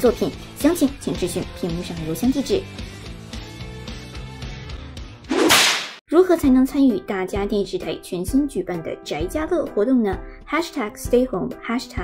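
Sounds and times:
quiet background music: 0:00.0 - 0:02.7, 0:06.1 - 0:12.0
whoosh sound effect: 0:05.3 - 0:06.0.

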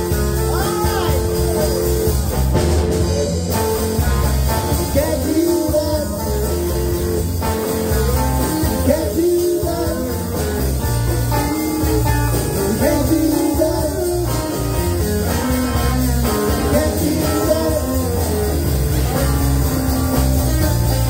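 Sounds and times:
bass guitar: 0:00.0 - 0:21.0
drums: 0:00.0 - 0:21.0
electric guitar lead: 0:00.0 - 0:21.0.

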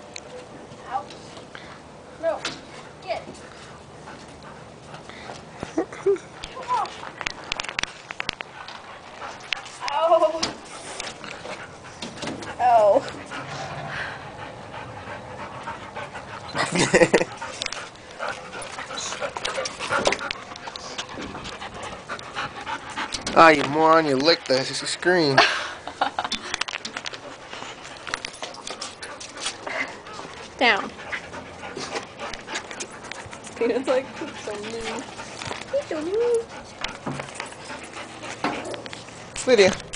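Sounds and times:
dog panting: 0:02.2 - 0:25.4, 0:27.0 - 0:39.9.

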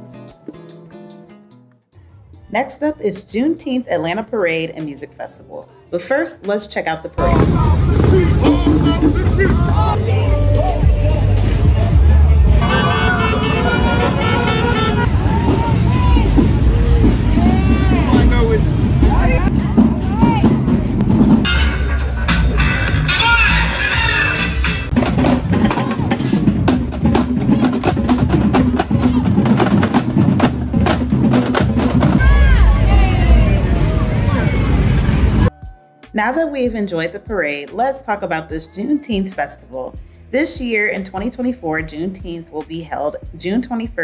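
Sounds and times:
voices: 0:02.6 - 0:24.9
drumline playing snare and bass drums: 0:07.2 - 0:10.0, 0:12.6 - 0:22.6, 0:24.6 - 0:35.5
motorcycle engines running: 0:07.2 - 0:10.0, 0:12.6 - 0:21.4
heavy bass: 0:07.2 - 0:37.4
vehicle horns tooting: 0:12.6 - 0:15.8.

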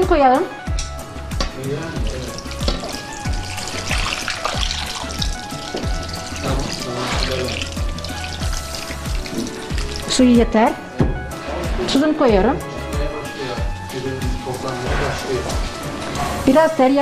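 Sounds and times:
background music with a beat: 0:00.0 - 0:16.6
water pouring into a pot: 0:01.7 - 0:10.4, 0:13.3 - 0:16.8.

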